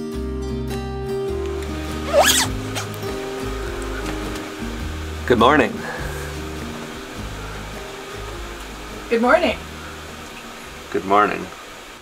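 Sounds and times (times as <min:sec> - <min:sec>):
background music with chords: 0:00.0 - 0:10.9
zipper pulled: 0:02.0 - 0:03.0.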